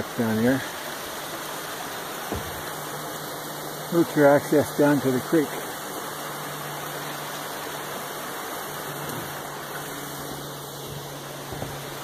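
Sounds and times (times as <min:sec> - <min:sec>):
creek water running: 0:00.0 - 0:12.0.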